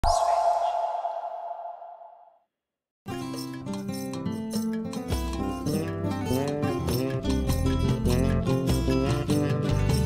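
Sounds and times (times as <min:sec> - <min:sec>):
held electronic tone: 0:00.0 - 0:02.3.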